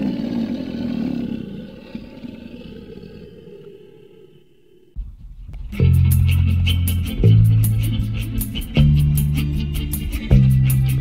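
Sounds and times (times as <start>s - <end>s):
creature roaring: 0.0s - 5.0s.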